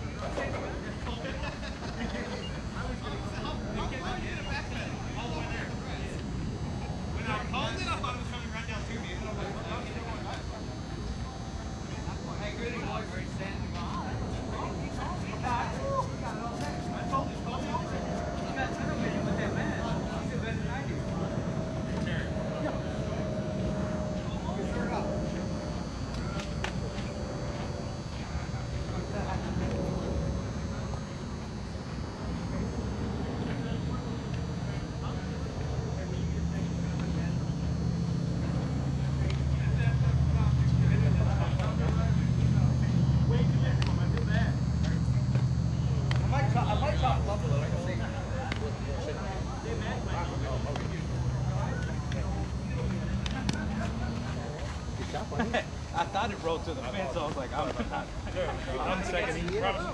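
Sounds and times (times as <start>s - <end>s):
indistinct voices talking: 0.0s - 59.9s
low steady hum: 0.0s - 59.9s.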